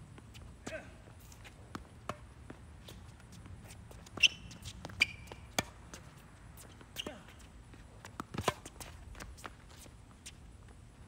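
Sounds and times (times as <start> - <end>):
footsteps on hard court: 0.1 - 11.0
tennis ball bouncing: 1.6 - 7.4, 8.0 - 9.6
racket striking tennis ball: 1.7 - 3.0, 4.1 - 6.0, 8.1 - 8.8
shoe squeaks: 2.8 - 5.6, 6.6 - 7.5.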